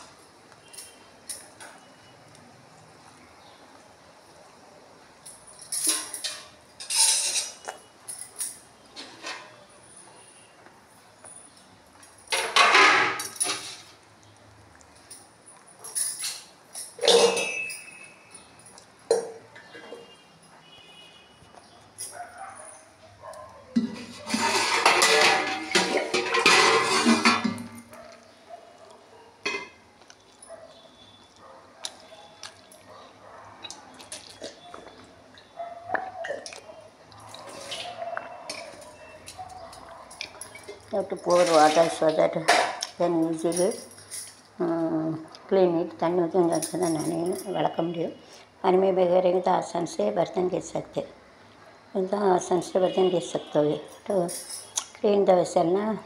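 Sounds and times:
metal dishes clinking and clattering: 0:05.4 - 0:09.7, 0:12.2 - 0:14.0, 0:15.8 - 0:20.2, 0:23.3 - 0:28.0, 0:29.4 - 0:29.8, 0:37.2 - 0:44.4.

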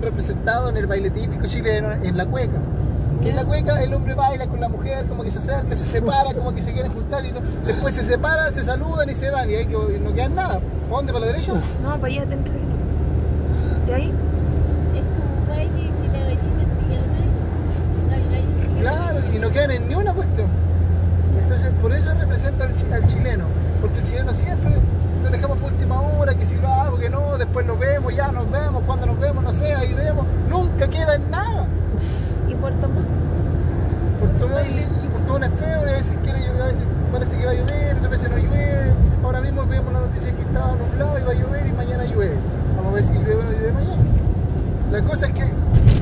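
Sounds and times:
car engine and tyres drone: 0:00.0 - 0:46.0.

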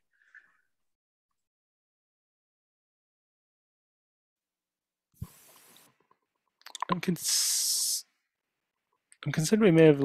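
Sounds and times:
person speaking clipped word: 0:06.7 - 0:07.3.

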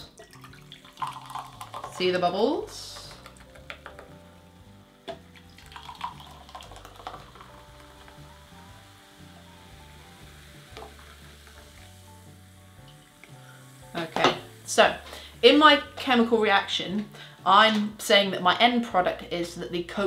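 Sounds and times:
cola pouring and fizzing: 0:00.0 - 0:04.2, 0:05.0 - 0:14.3
quiet background music: 0:00.0 - 0:20.0.

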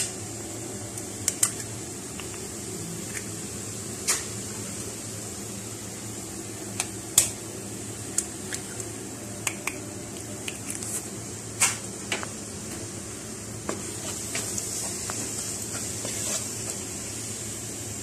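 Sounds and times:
eggs sizzling in pan: 0:00.0 - 0:18.0
spatula stirring in pan: 0:13.6 - 0:17.6.

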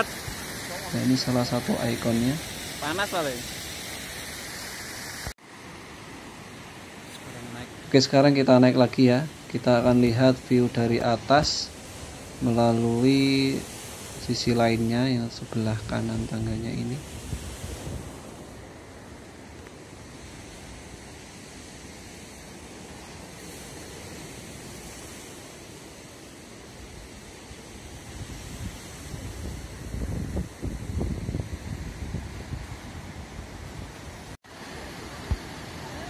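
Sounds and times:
heavy surf breaking: 0:00.0 - 0:36.0
wind on microphone: 0:10.8 - 0:26.1, 0:26.8 - 0:36.0.

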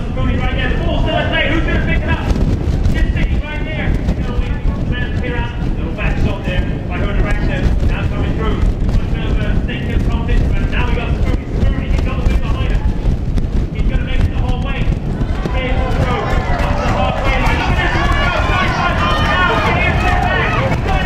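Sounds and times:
commentator talking: 0:00.0 - 0:02.4, 0:03.0 - 0:13.0, 0:13.7 - 0:21.0
low rumble: 0:00.0 - 0:21.0.

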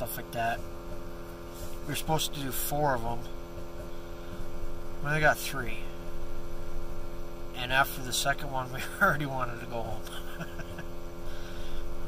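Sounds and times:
steady low hum in vehicle cab: 0:00.0 - 0:12.0.

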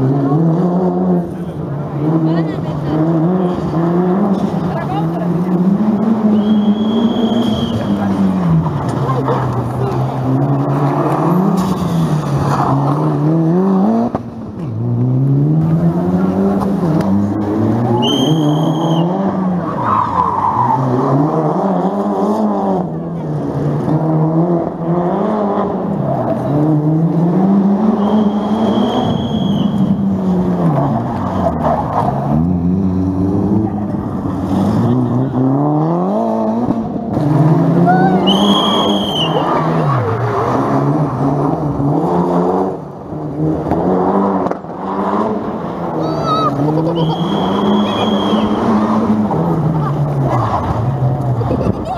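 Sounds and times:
rally car engines revving: 0:00.0 - 0:51.9
tyre squeals: 0:17.9 - 0:21.0, 0:27.9 - 0:29.9, 0:46.0 - 0:49.0.

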